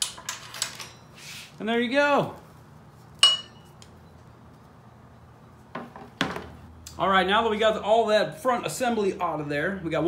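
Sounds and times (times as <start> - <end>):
sharp metallic clink: 3.2 - 3.8.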